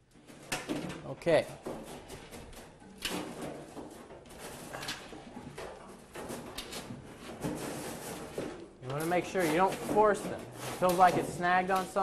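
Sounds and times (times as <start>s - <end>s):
wires scraping against sheet metal: 0.1s - 12.0s.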